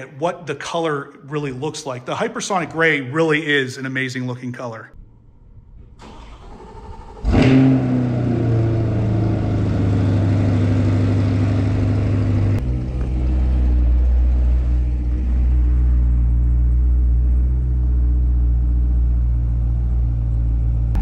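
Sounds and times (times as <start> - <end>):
car engine starting and idling: 5.0 - 21.0.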